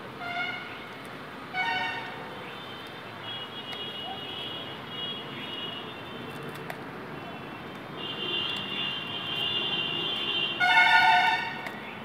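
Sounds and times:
vehicle horn honking: 8.0s - 11.6s.

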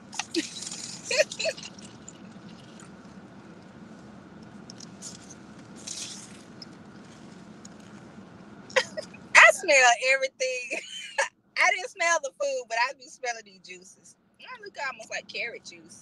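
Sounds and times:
juice pouring into a cup: 0.2s - 3.2s
sip or rustle: 4.6s - 8.0s.

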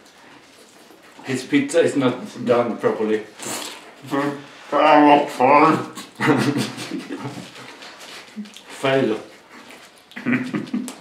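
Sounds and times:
man's breathy laughter: 6.0s - 7.6s.

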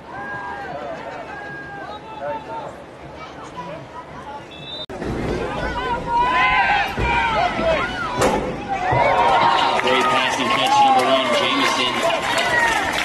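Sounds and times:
football crowd shouting and cheering: 0.0s - 13.0s.

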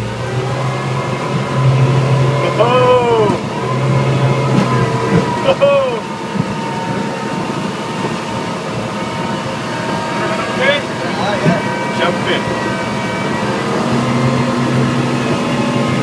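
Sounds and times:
boat engine running at speed: 0.0s - 16.0s
wind and water rushing past: 0.0s - 16.0s.

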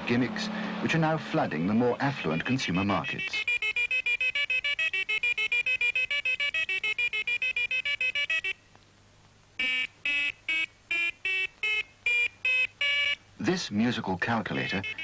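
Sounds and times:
calculator beeping a tune: 1.3s - 8.6s, 9.6s - 13.6s, 14.4s - 15.0s.

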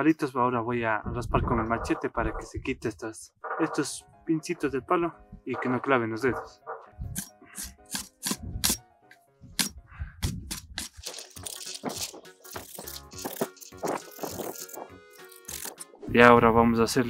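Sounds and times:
background music: 1.4s - 17.0s
machete scraping wooden stick: 9.6s - 16.0s.

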